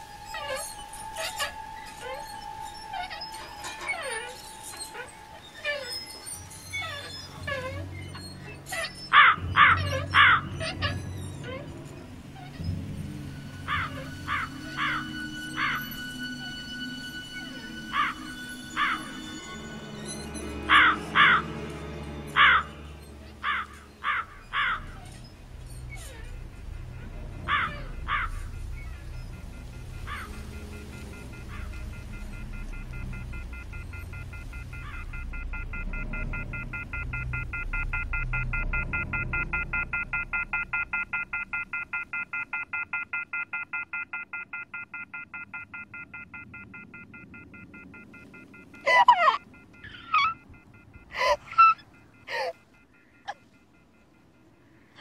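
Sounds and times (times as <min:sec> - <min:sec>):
low drone: 0:00.0 - 0:42.8
rapidly pulsing high buzz: 0:22.7 - 0:42.5.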